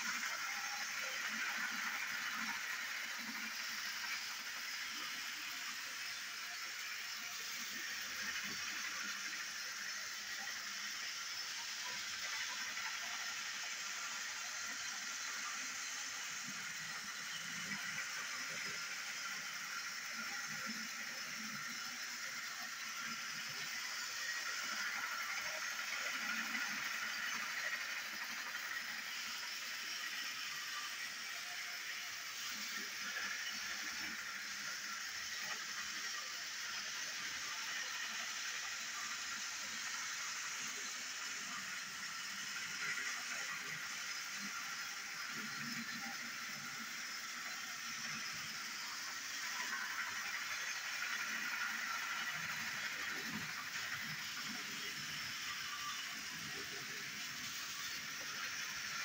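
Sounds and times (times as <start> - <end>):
toy train motor whirring: 0.0 - 59.0
toy train wheels rattling: 0.0 - 59.0.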